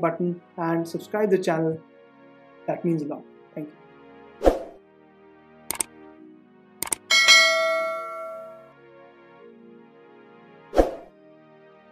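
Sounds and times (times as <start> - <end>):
faint background music: 0.0 - 7.6, 8.5 - 11.9
notification bell chime: 7.0 - 8.7.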